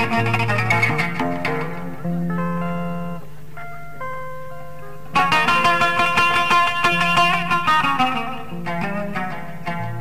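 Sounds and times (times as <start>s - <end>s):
oud plucked notes: 0.0s - 10.0s.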